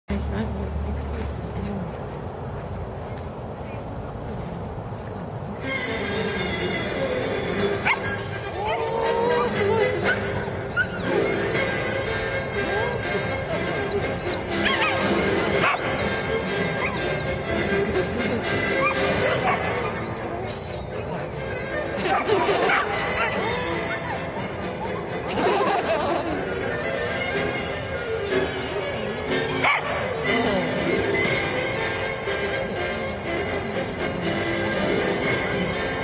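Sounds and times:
music with held tones: 5.9s - 36.0s
dog yipping: 7.8s - 11.3s, 12.7s - 17.5s, 18.7s - 25.0s, 28.1s - 34.7s.

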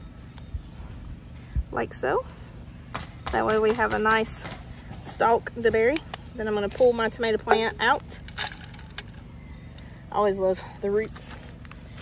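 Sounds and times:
soil rustling and crumbling: 6.0s - 9.3s.

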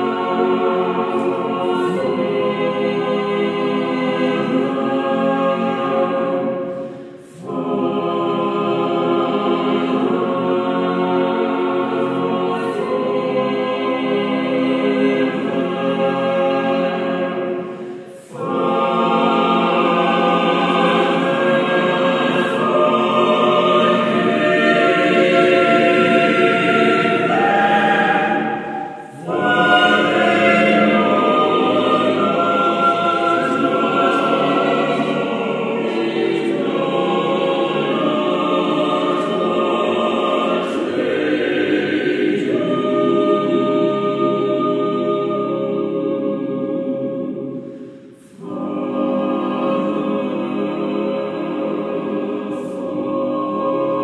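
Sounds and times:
choir singing in parts: 0.0s - 54.0s.

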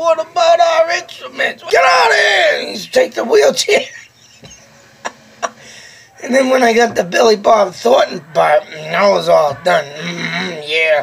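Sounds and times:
man laughing quietly: 3.7s - 6.0s.

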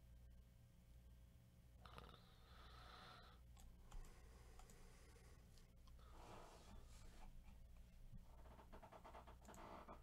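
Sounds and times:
computer mouse clicks: 3.6s - 4.8s.

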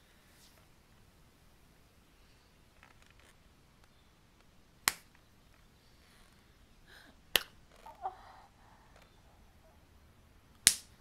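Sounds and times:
slap across the face: 4.8s - 5.2s, 7.3s - 7.6s, 10.6s - 11.0s.

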